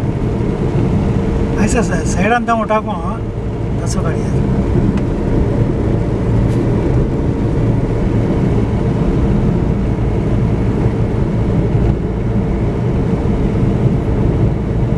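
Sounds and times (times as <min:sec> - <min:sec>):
road and engine rumble in vehicle: 0:00.0 - 0:14.9.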